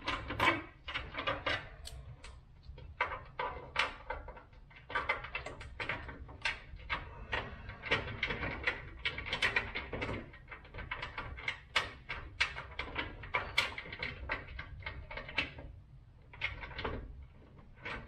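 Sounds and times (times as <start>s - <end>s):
small clicks and scrapes of fittings: 0.0s - 18.0s.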